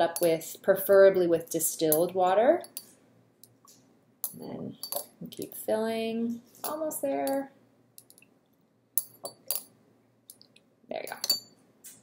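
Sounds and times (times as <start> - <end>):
glass clinks and clicks: 4.2 - 5.1, 9.0 - 9.7, 11.1 - 11.6.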